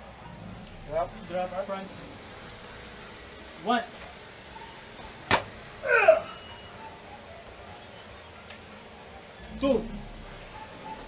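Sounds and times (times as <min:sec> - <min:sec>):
body slapping onto mat: 0:05.3 - 0:05.5
man grunting: 0:05.8 - 0:06.4.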